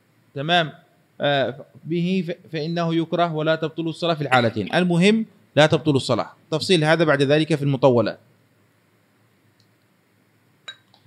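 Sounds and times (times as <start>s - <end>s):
man speaking: 0.4s - 8.2s.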